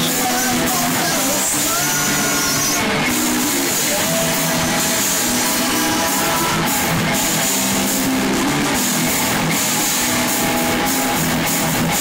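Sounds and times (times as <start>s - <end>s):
metal band playing loud: 0.0s - 12.0s.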